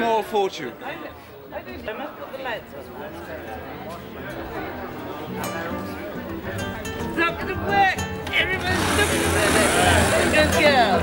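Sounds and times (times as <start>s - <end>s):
voices: 0.0s - 11.0s
music: 3.9s - 11.0s
engine hiss: 8.6s - 11.0s.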